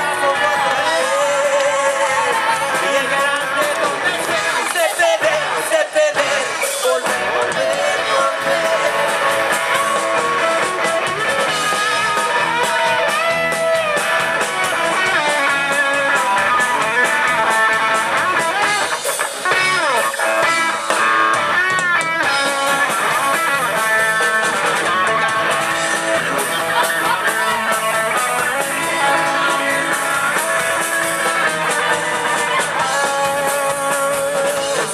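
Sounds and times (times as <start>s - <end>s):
electric guitars: 0.0s - 34.9s
rock band playing loudly: 0.0s - 34.9s.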